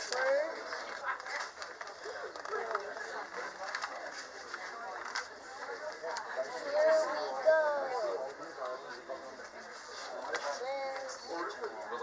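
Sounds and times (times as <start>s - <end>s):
paper rustling and crinkling: 0.0s - 6.3s
indistinct background voices: 0.0s - 12.0s.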